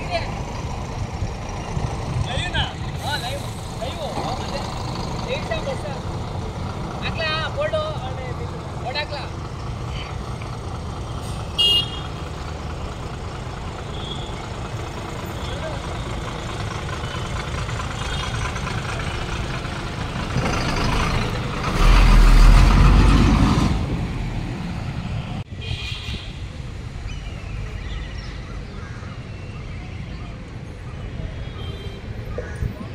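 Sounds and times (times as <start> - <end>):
bus engine running: 0.0 - 25.5
traffic rumble: 0.0 - 32.9
bus horn toot: 11.5 - 12.2.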